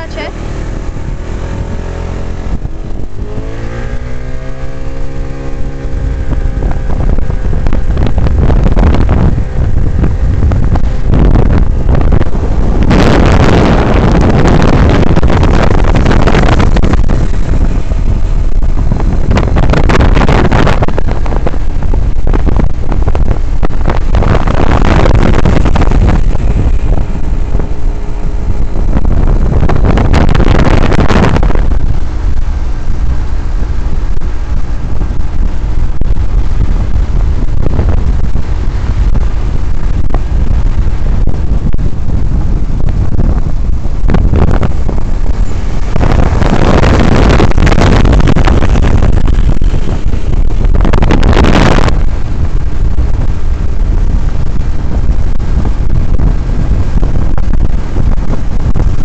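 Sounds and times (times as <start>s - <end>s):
low engine drone: 0.0s - 59.0s
wind buffeting microphone: 0.0s - 59.0s.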